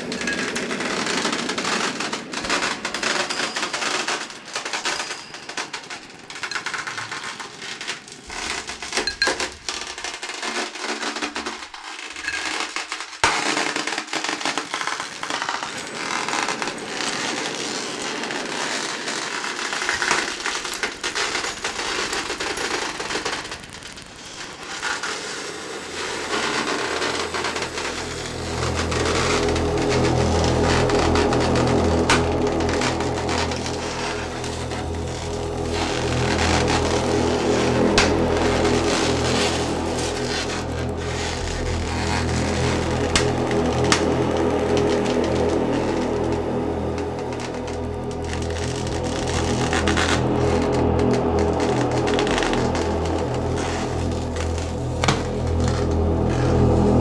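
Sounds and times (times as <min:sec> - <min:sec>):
crackling clicking noise texture: 0:00.0 - 0:57.0
low synth drone: 0:25.8 - 0:57.0.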